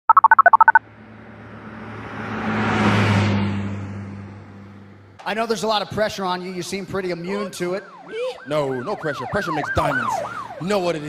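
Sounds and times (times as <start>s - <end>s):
phone keypad two-tone beeps: 0.1s - 0.8s.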